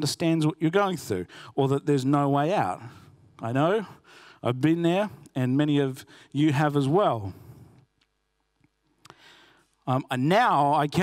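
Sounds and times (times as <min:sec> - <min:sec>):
soft breath: 0:09.0 - 0:09.8.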